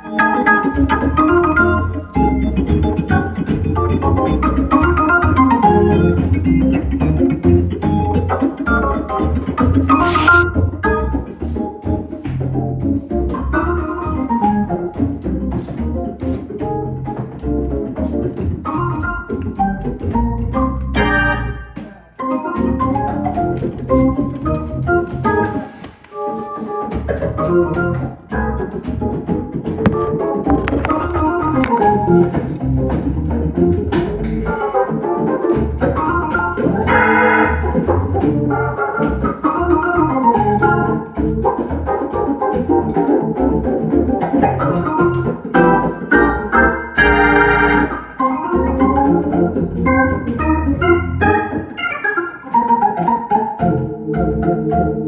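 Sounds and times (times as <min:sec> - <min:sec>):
organ playing solo: 0:00.0 - 0:11.8, 0:18.6 - 0:25.6, 0:34.5 - 0:41.0, 0:44.6 - 0:55.0.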